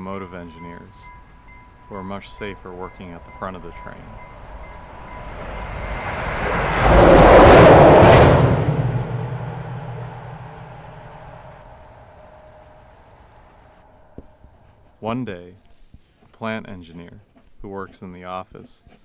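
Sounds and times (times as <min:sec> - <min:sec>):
train passing: 0:00.0 - 0:14.1.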